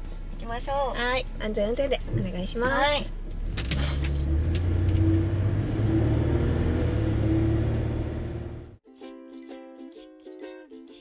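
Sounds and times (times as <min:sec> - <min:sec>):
van engine and road rumble: 0:00.0 - 0:08.8.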